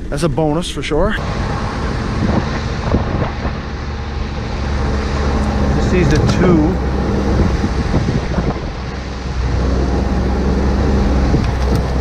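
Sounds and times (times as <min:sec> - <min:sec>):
snowmobile engine running: 0:01.2 - 0:12.0
wind buffeting microphone: 0:01.2 - 0:12.0.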